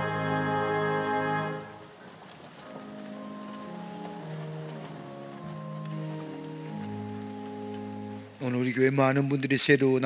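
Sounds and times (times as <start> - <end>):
church organ chords: 0.0 - 1.9, 2.6 - 9.0.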